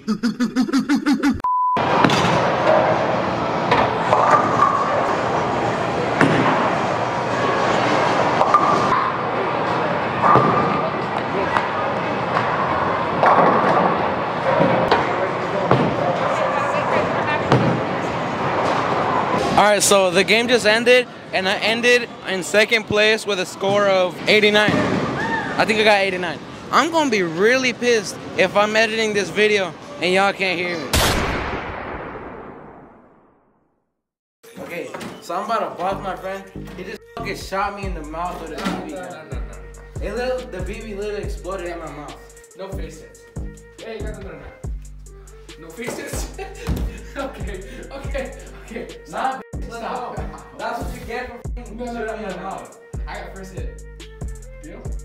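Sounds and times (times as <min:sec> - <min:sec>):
booming impact: 0:30.9 - 0:33.4.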